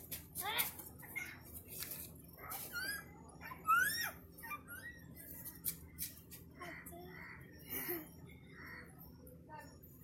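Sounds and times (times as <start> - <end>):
children squealing and giggling: 2.4 - 5.5.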